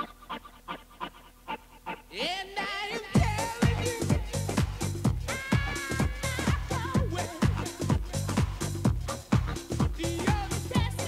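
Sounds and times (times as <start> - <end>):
rhythmic breathy panting sample: 0.0 - 2.2, 2.9 - 11.0.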